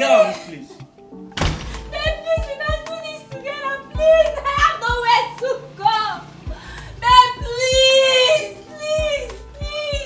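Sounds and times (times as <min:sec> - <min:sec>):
music with steady beat: 0:00.8 - 0:05.5, 0:06.4 - 0:10.0
door slamming shut: 0:01.3 - 0:02.0.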